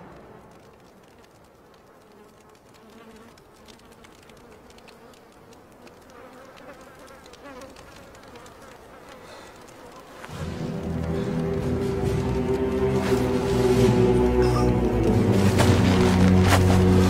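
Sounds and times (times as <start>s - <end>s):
soft ticks: 0.1s - 11.6s
faint buzzing of flies: 1.2s - 17.0s.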